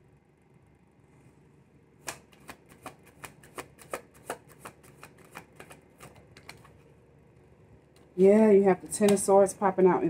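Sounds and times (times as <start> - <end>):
cards being shuffled: 2.0 - 6.9.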